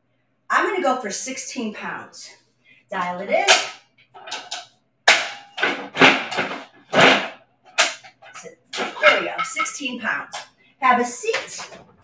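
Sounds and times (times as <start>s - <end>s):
dumbbells clacking and rattling: 4.2s - 10.5s.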